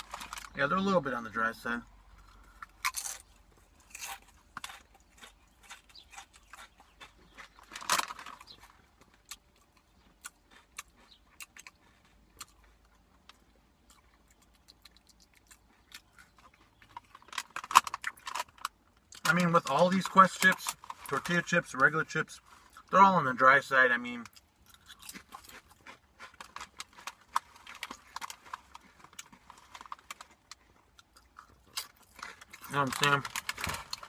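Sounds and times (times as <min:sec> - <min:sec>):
chip bag crinkling: 0:00.0 - 0:01.0, 0:02.8 - 0:09.2, 0:24.7 - 0:34.0
crunching and chewing chips: 0:00.0 - 0:34.0.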